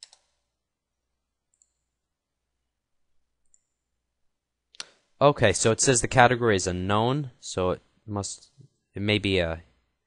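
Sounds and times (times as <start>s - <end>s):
computer mouse clicks: 0.0s - 0.4s, 1.5s - 1.9s, 3.4s - 3.8s.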